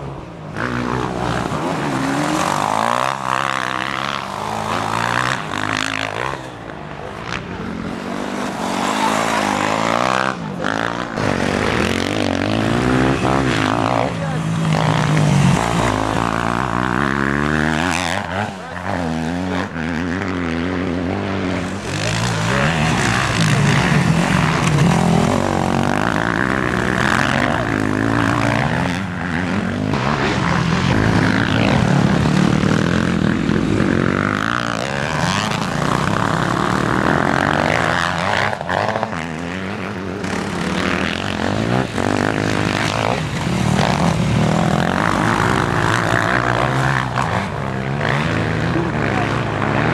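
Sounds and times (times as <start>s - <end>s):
dirt bike engines revving: 0.0s - 49.9s.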